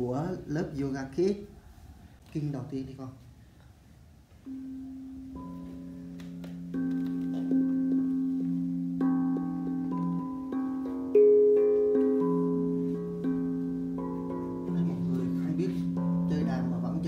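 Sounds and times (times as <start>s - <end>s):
steel tongue drum notes: 4.4s - 17.0s.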